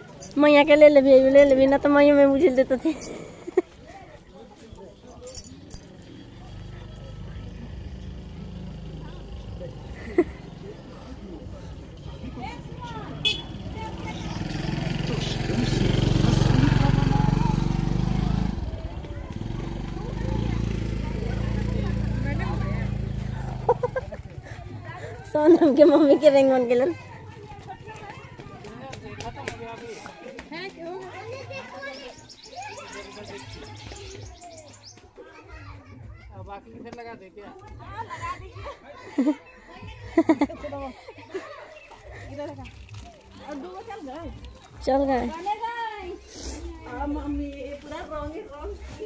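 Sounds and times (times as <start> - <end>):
faint voices: 0.0 - 49.0
women and children talking: 0.0 - 49.0
vehicle engine humming: 4.9 - 28.3.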